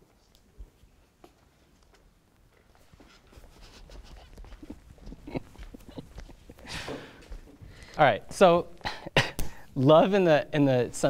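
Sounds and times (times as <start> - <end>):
footsteps on stage floor: 0.0 - 8.0.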